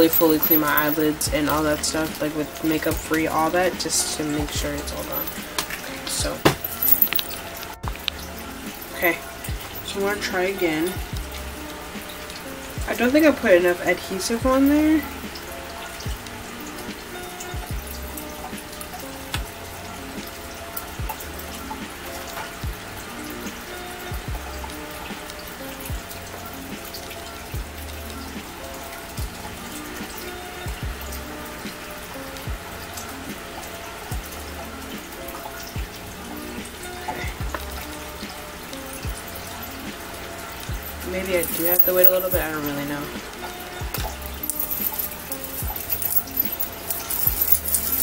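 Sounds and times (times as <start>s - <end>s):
quiet background music: 0.0s - 48.0s.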